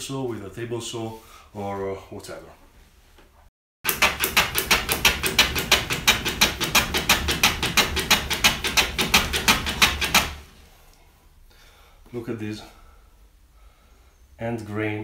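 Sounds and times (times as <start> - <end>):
hand plane slicing wood: 3.9 - 10.4.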